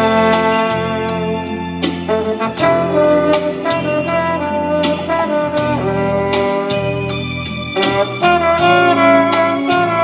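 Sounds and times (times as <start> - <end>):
backing band: 0.0 - 10.0
light percussion beat: 0.0 - 10.0
trombone melody: 0.0 - 10.0.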